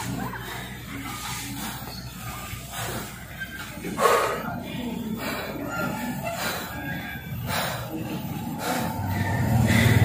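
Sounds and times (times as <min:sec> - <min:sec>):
man breathing hard: 0:00.0 - 0:10.0.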